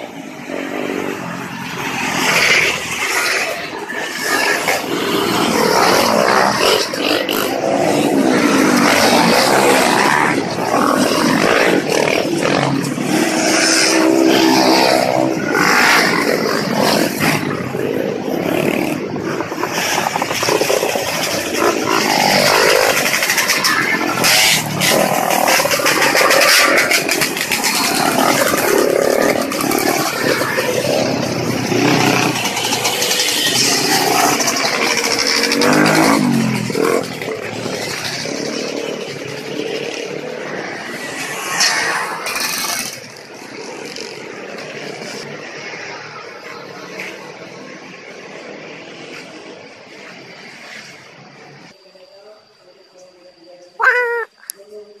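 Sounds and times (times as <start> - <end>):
motorcycle engines revving past: 0.0 - 51.8.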